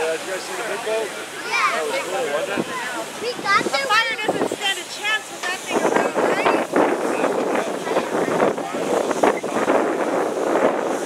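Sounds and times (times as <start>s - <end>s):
steady rushing noise: 0.0s - 11.0s
wind buffeting microphone: 0.0s - 11.0s.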